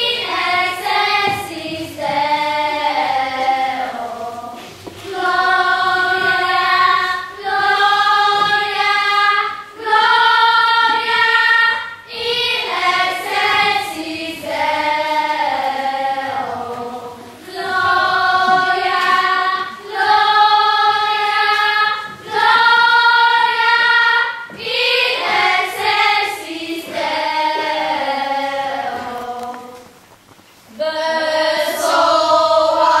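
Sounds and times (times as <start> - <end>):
children singing together: 0.0 - 30.0, 30.7 - 33.0.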